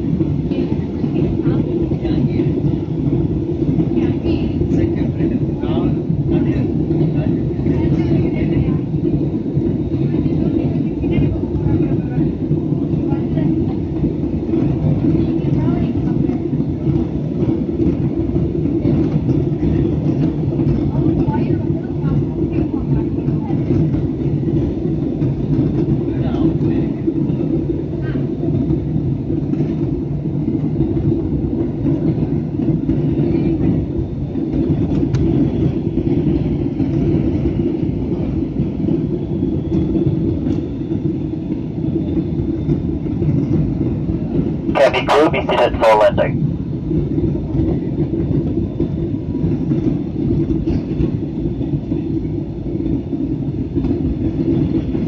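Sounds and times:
jet engine and airflow rumble: 0.0 - 55.0.

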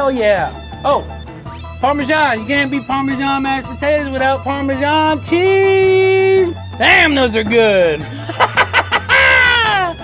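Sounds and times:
man cackling: 8.1 - 10.0
man whooping: 9.0 - 10.0.

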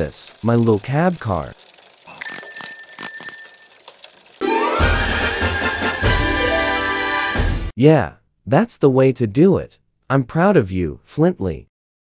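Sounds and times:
bicycle bell ringing: 2.1 - 4.2.

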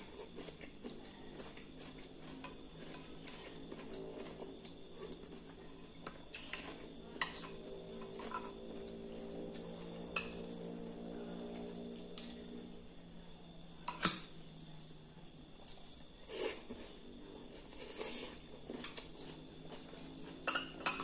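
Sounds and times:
spoon scraping ceramic bowls: 6.4 - 8.7.

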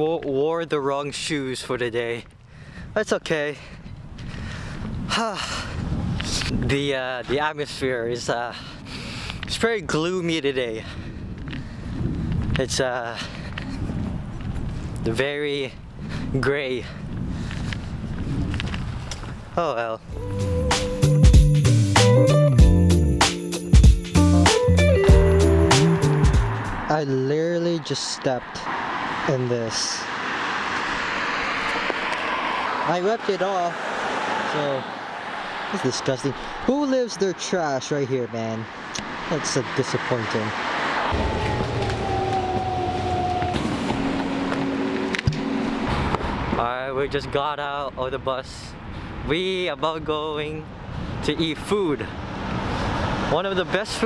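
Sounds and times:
low rumble of outdoor air: 8.7 - 20.7, 40.8 - 53.2
footsteps on a street: 13.2 - 15.0, 30.5 - 32.4, 41.1 - 46.6
bus rumble: 38.6 - 47.2
whining motor tone: 41.1 - 46.5.

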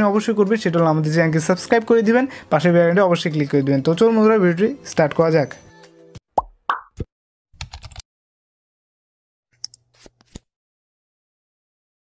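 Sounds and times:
keyboard typing clicks: 7.6 - 8.0.

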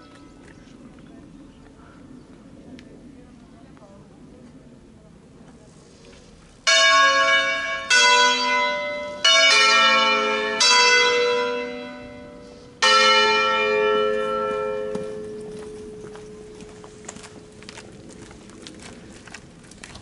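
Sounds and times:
church bells ringing: 6.6 - 17.8.

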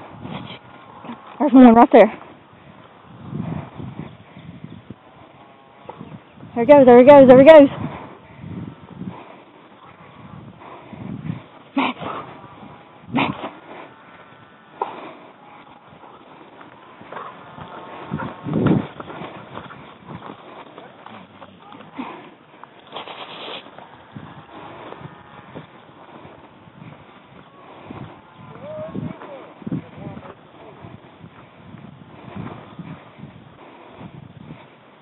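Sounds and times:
distant dogs barking and baying: 7.7 - 35.0.

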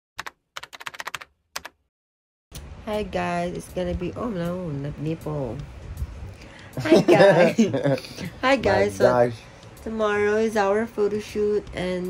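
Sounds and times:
keyboard typing clicks: 0.2 - 1.8.

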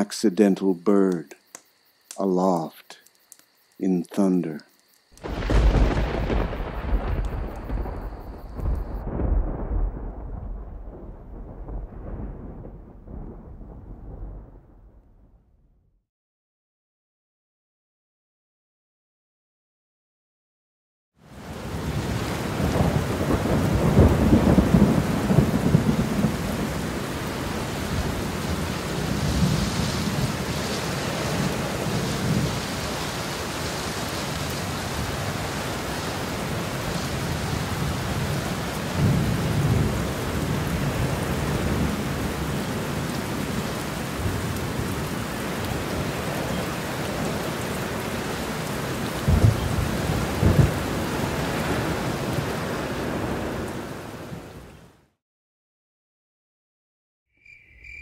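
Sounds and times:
steady rain: 0.0 - 14.7, 21.2 - 55.0
sharp thunderclaps: 5.2 - 15.7, 21.8 - 26.9, 37.8 - 42.0, 49.2 - 51.9
thunder rolling: 5.2 - 15.8, 21.6 - 32.8, 37.2 - 42.8, 49.2 - 52.0.

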